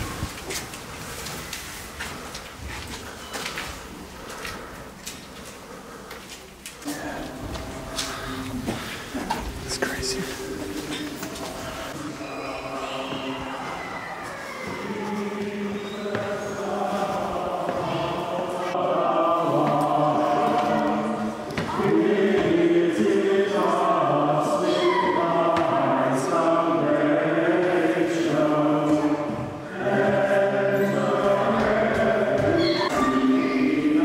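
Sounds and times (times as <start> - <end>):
choir singing sustained chords: 6.9 - 34.0.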